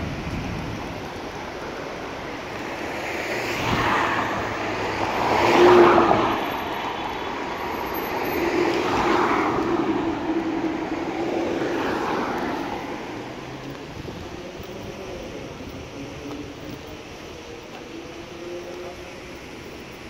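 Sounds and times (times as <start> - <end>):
cars driving past: 0.0 - 20.0.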